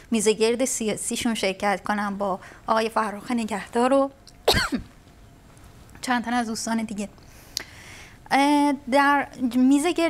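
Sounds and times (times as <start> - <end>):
woman coughing: 4.4 - 4.9.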